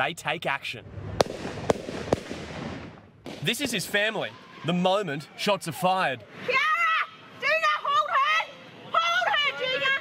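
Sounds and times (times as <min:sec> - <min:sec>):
gunshots: 0:01.1 - 0:03.9.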